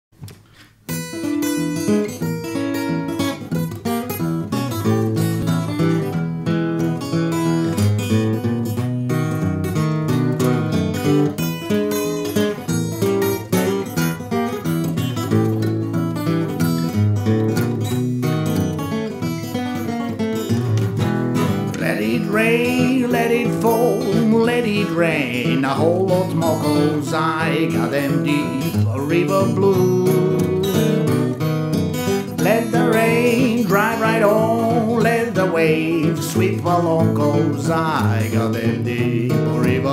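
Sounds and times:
fingerpicked acoustic guitar: 0:00.2 - 0:39.9.

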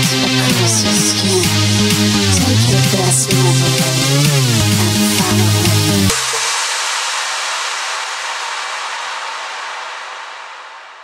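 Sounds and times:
electronic dance beat and bass: 0:00.0 - 0:08.6.

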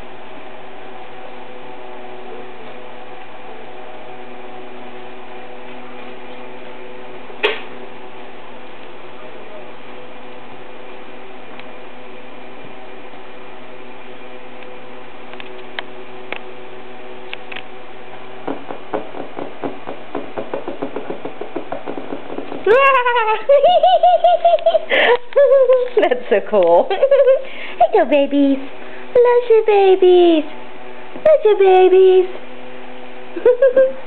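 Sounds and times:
machine hum: 0:00.0 - 0:34.0.

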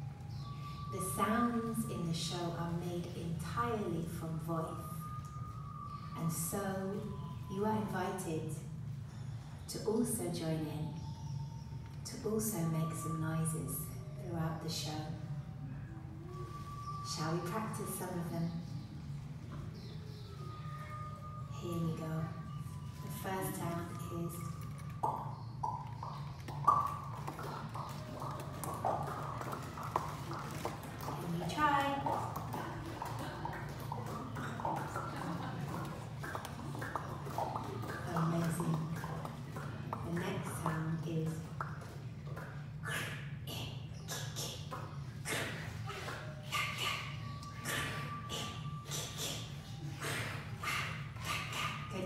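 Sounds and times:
mouth clicks: 0:24.0 - 0:52.0
voiced mouth noises: 0:24.8 - 0:52.0.

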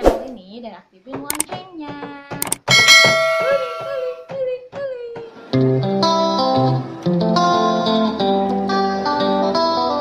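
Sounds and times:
quick clicks: 0:02.4 - 0:02.7
bright bell ding: 0:02.5 - 0:04.3.

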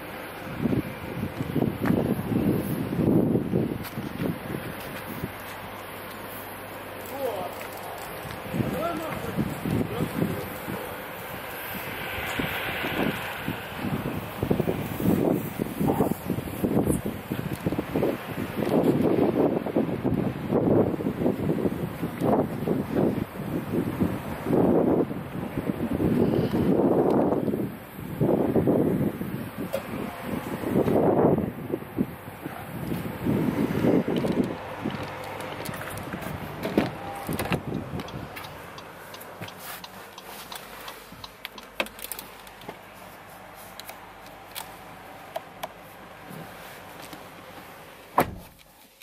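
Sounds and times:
wind buffeting microphone: 0:00.0 - 0:05.5, 0:08.0 - 0:38.9.

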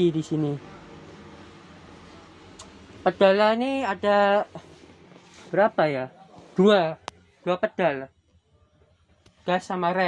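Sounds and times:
low hum in bus cabin: 0:00.0 - 0:10.0.

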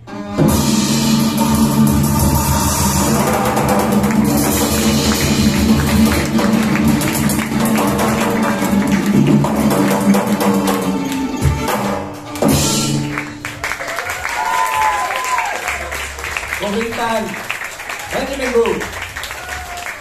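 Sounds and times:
driving drum beat: 0:00.4 - 0:15.0
violin and cello: 0:10.1 - 0:12.9.

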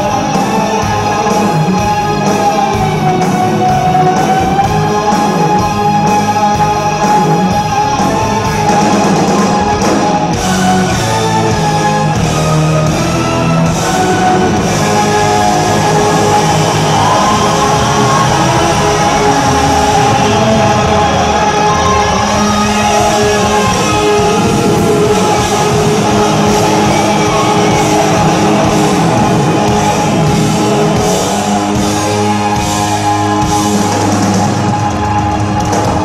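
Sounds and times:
electric guitar: 0:00.0 - 0:36.0
rock band playing live: 0:00.0 - 0:36.0.

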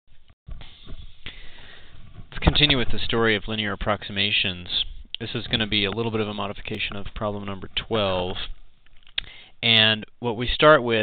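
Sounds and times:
person inhaling sharply through nose: 0:00.6 - 0:02.0, 0:09.2 - 0:09.6.

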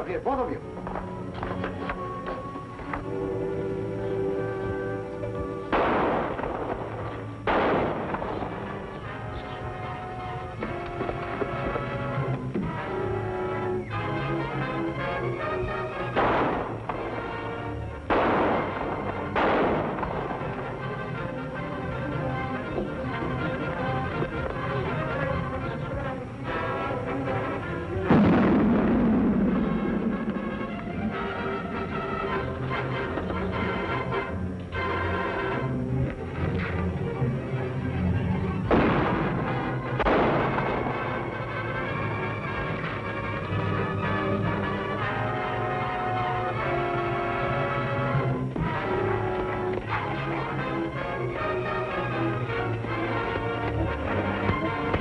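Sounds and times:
dramatic orchestral music: 0:00.0 - 0:55.0
dynamite blast with rumbling tail: 0:05.6 - 0:09.2, 0:16.1 - 0:21.2, 0:27.9 - 0:32.0, 0:38.6 - 0:42.8
gunshots: 0:05.6 - 0:09.6, 0:15.1 - 0:24.4, 0:28.0 - 0:31.2, 0:38.6 - 0:42.0.

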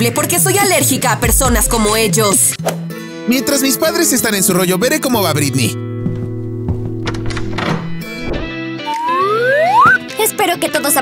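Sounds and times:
background music steady notes: 0:00.0 - 0:11.0.

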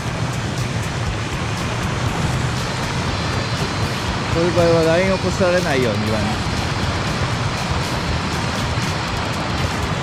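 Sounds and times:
stream water pouring over weir: 0:00.0 - 0:10.0.

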